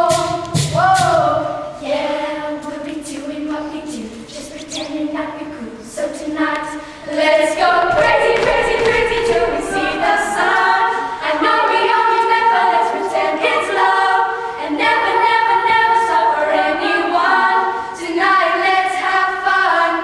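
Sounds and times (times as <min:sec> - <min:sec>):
children singing a cappella: 0:00.0 - 0:20.0.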